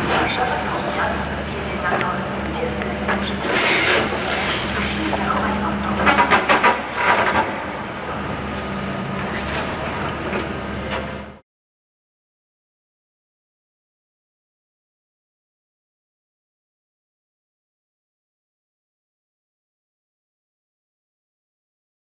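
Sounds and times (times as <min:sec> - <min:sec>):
diesel engine running: 0:00.0 - 0:11.4.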